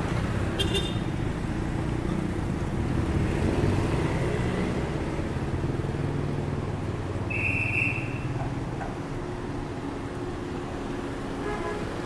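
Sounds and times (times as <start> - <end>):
cars and motorcycles passing: 0.0 - 12.0.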